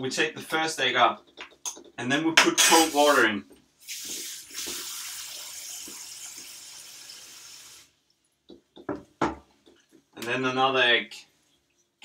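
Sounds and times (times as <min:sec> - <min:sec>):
tap water running into sink: 0:03.8 - 0:07.9.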